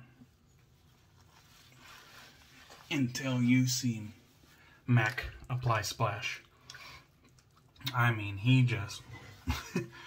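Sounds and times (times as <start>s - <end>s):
hands rubbing face and beard: 0.6s - 4.6s.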